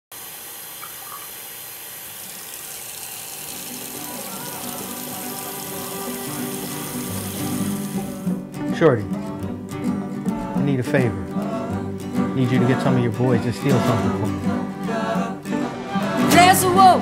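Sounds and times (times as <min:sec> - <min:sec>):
water running from sink tap: 0:00.1 - 0:08.3
music: 0:03.4 - 0:17.0.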